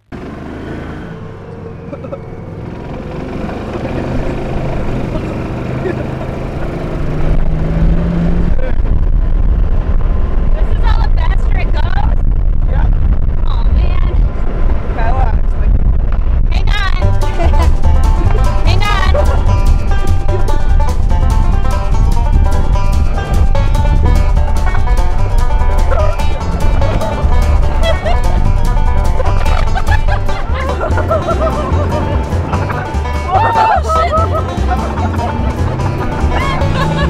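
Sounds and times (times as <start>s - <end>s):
vehicle engine rumble: 0.0s - 37.0s
wind on microphone: 6.7s - 32.8s.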